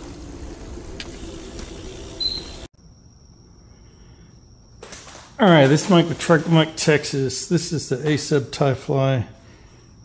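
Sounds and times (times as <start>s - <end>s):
wind and rolling noise: 0.0s - 2.7s.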